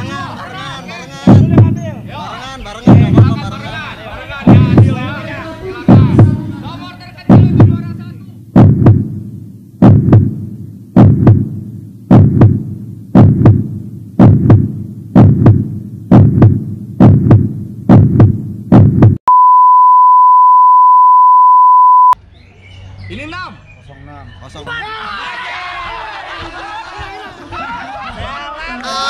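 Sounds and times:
heartbeat double thumps: 1.3s - 1.9s, 2.9s - 3.5s, 4.4s - 5.1s, 5.9s - 6.5s, 7.2s - 19.2s
steady high-pitched beep: 19.3s - 22.2s.

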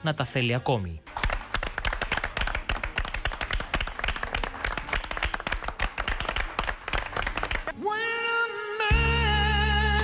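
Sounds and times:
group of people clapping: 1.0s - 7.8s.

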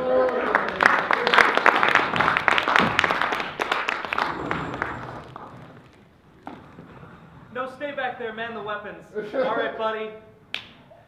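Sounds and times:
audience applauding: 0.0s - 6.5s.

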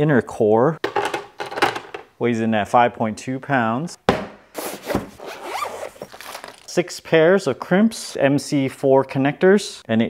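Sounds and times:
sharp knock: 4.1s - 4.4s
zipper rasping: 4.6s - 6.6s.

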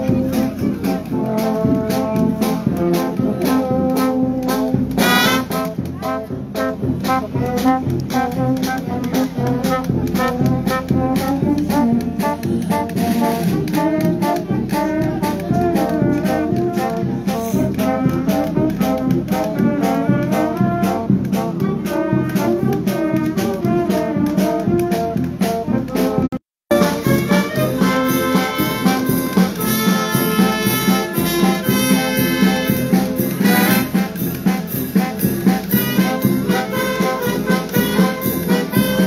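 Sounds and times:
brass band playing a march: 0.0s - 39.0s.

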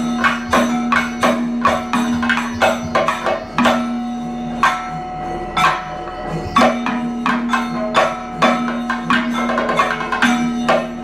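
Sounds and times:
sharp drum strikes: 0.0s - 5.0s, 5.6s - 11.0s
steady ringing tone: 0.0s - 11.0s.

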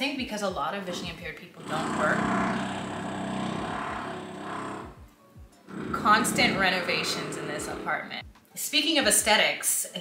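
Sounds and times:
power tool running: 1.6s - 5.0s, 5.7s - 8.0s.

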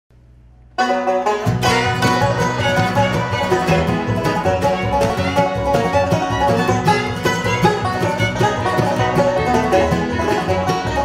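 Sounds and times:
banjo: 0.7s - 11.0s
bluegrass band playing: 0.7s - 11.0s.

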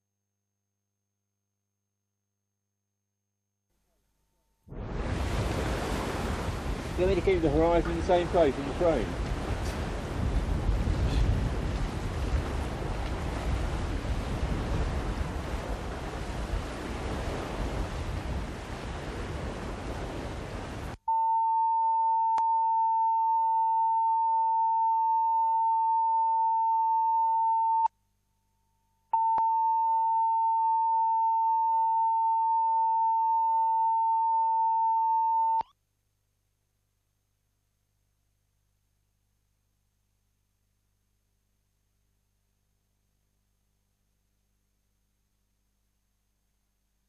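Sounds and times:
wind on microphone: 4.7s - 21.0s
sea noise: 4.7s - 24.9s
single-pitch test tone: 21.1s - 27.9s, 29.2s - 35.8s.

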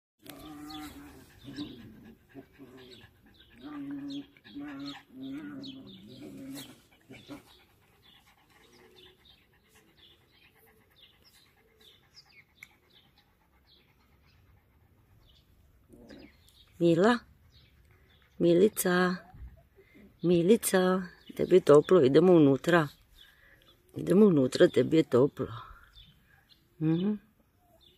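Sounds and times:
birds chirping: 0.2s - 27.9s.

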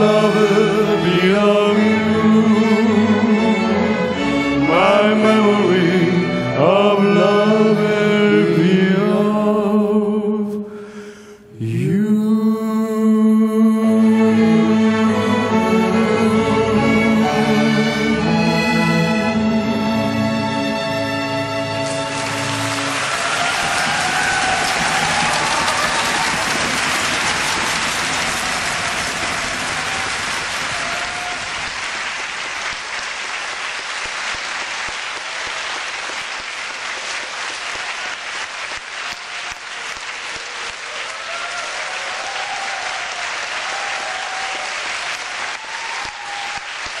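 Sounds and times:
audience applauding: 21.7s - 47.0s.

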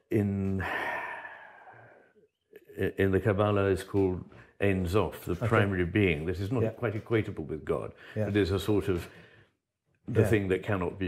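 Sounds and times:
man sighing: 0.5s - 2.0s.

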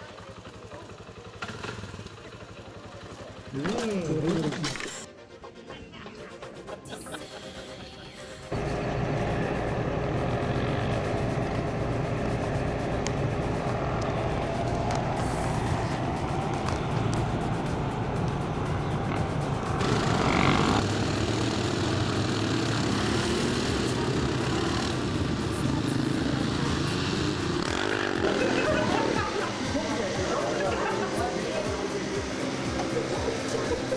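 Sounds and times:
quad engines running: 0.0s - 5.1s, 6.6s - 33.9s
background music: 3.5s - 33.9s.

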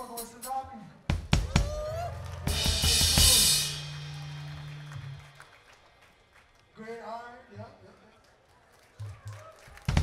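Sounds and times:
cymbal crash ringing: 2.5s - 4.2s.

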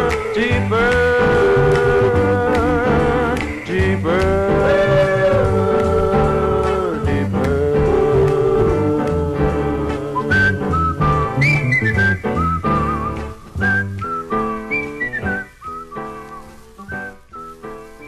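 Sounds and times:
soul band bass drums and guitar: 0.0s - 18.0s
whistled melody: 0.0s - 18.0s.

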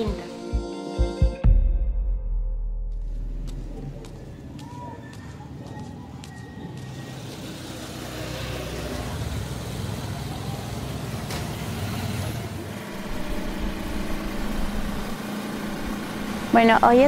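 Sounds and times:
traffic passing: 3.0s - 17.0s.

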